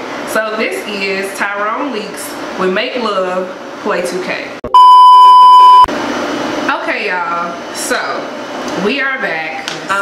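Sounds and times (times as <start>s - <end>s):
woman speaking: 0.3s - 4.6s, 6.7s - 10.0s
test-pattern beep: 4.7s - 5.9s.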